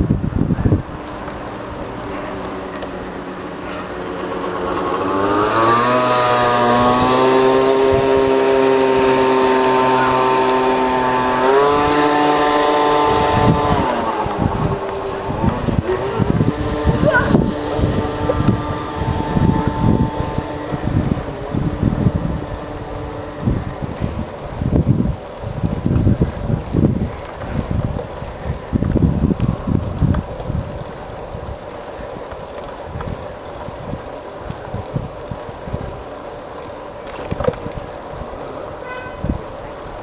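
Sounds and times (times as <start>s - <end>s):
bicycle ride rumble: 0.0s - 40.0s
steady pitched hum: 0.0s - 40.0s
wind buffeting microphone: 0.0s - 40.0s.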